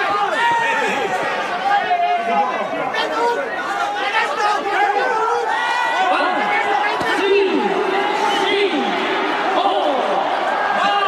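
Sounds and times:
overlapping chatter: 0.0 - 11.0.

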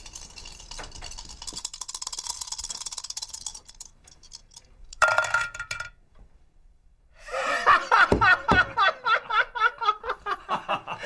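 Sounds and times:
dice rattling in a shaker: 0.0 - 5.9.

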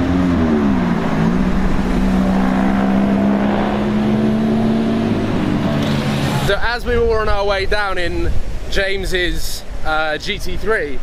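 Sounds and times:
sports car engine driving by: 0.0 - 6.7.

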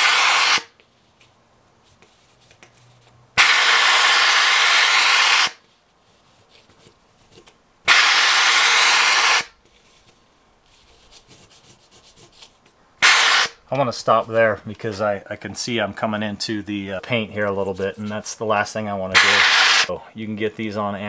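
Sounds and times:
steam cleaner hissing: 0.0 - 0.7, 3.4 - 5.6, 7.9 - 9.5, 13.0 - 13.6, 19.2 - 19.9.

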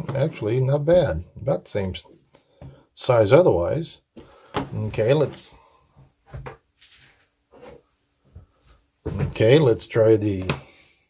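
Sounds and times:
soft handling knocks and rustles: 4.2 - 10.8.

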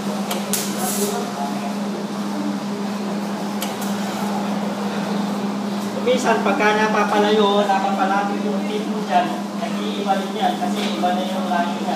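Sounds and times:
steady hum: 0.0 - 11.9.

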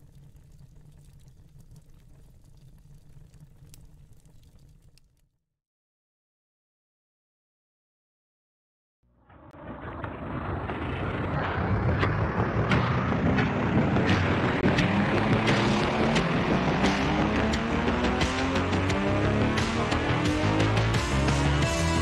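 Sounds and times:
intro music with sharp beat: 11.1 - 22.0.

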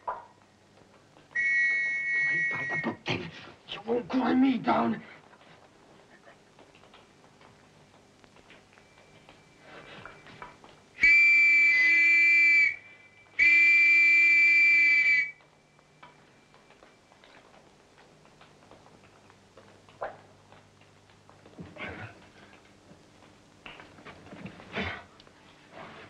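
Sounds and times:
signal whistle blasts: 1.3 - 2.9, 11.0 - 15.5.

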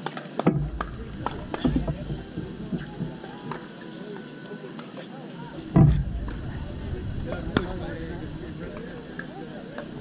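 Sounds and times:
faint voices: 0.0 - 10.0
low rumble: 5.7 - 8.8.

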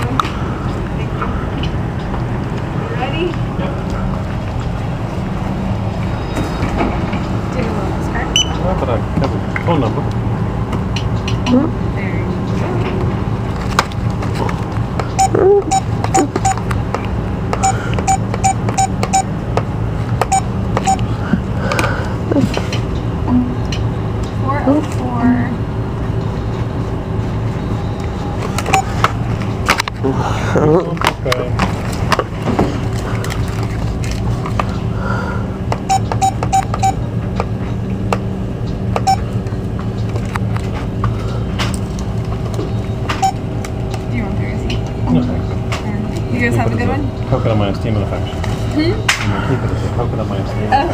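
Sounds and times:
low store hum: 0.0 - 50.9
keypad beeping: 8.4 - 8.6, 15.2 - 16.7, 17.6 - 19.3, 20.2 - 21.1, 28.7 - 29.0, 35.8 - 37.0, 39.0 - 39.2, 43.2 - 43.4.

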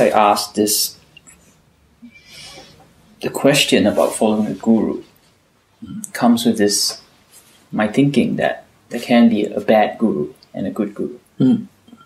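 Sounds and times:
soft breathy hiss: 0.6 - 7.8.

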